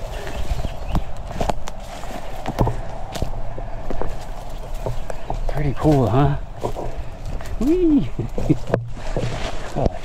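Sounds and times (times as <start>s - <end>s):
footsteps on sticks and dry leaves: 0.0s - 10.0s
low wind rumble: 0.0s - 10.0s.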